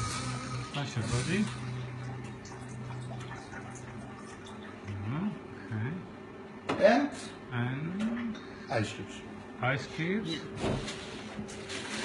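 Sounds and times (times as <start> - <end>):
man humming and murmuring: 7.5 - 8.5.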